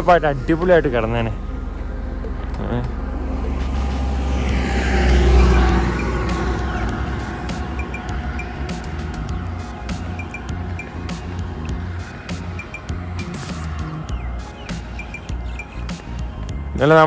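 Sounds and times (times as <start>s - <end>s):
vehicle passing: 0.0s - 16.7s
steady low rumble: 0.0s - 16.8s.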